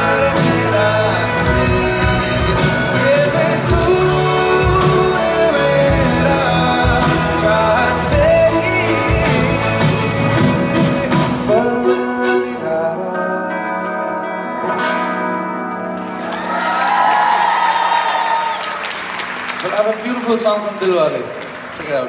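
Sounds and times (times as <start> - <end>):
male singer: 0.0 - 14.8
acoustic guitar: 0.0 - 17.1
band accompaniment: 0.0 - 22.0.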